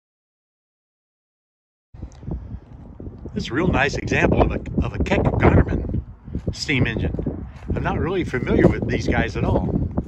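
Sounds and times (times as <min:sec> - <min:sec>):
low rumbling noise: 0:02.0 - 0:10.0.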